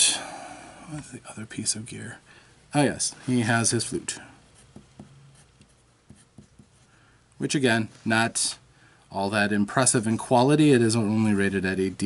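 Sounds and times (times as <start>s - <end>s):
pencil scratching on paper: 4.6s - 6.9s.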